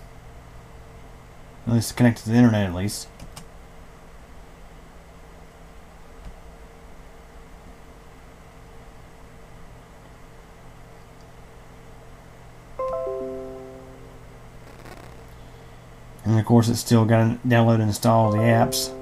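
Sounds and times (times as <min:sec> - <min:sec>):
descending system chime: 0:12.8 - 0:14.4, 0:18.2 - 0:19.0
computer humming: 0:12.8 - 0:15.3, 0:18.0 - 0:19.0.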